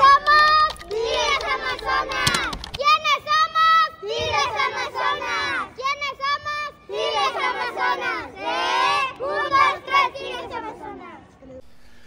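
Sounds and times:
girls shouting a team cheer: 0.0s - 10.8s.

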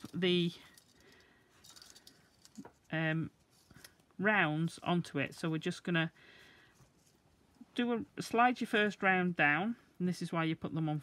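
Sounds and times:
wire and beads clicking: 0.0s - 2.8s.

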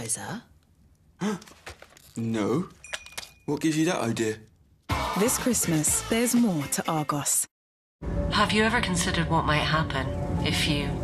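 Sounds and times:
person sighing: 1.2s - 1.6s.

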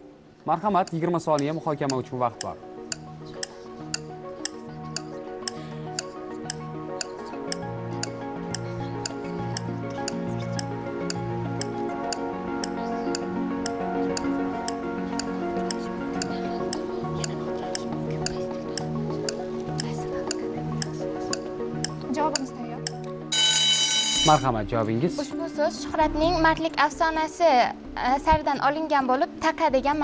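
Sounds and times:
clock-like tick: 0.8s - 23.1s
held synth chords: 0.9s - 24.5s.

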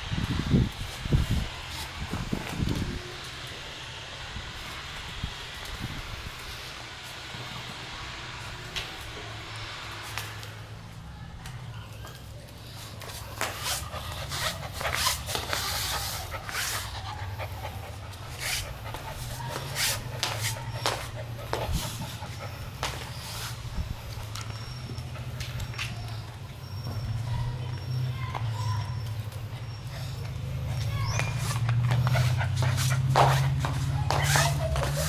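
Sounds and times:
claws clicking on tiled floor: 11.4s - 26.9s, 27.8s - 35.0s
puppy panting: 12.9s - 27.0s, 29.1s - 35.0s.

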